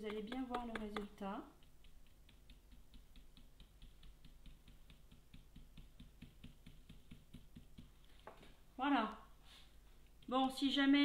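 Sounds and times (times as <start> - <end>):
stencil brush tapping: 0.0 - 8.6, 10.0 - 11.0.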